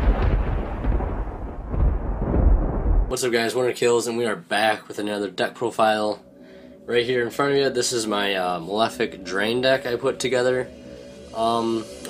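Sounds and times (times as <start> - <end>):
thunder rumble with crackle: 0.0 - 3.7.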